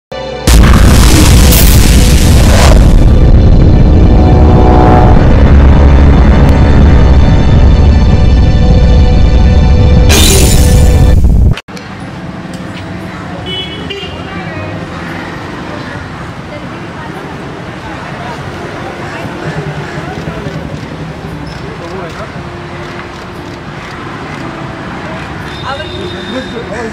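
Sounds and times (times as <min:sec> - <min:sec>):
street traffic: 0:00.1 - 0:26.9
deep rumbling boom: 0:00.5 - 0:11.6
vehicle horn toot: 0:04.0 - 0:07.0.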